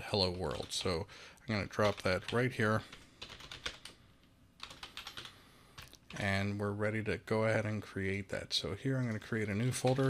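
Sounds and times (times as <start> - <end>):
typing on computer keyboard: 1.8 - 4.0, 4.6 - 6.2, 9.1 - 10.0.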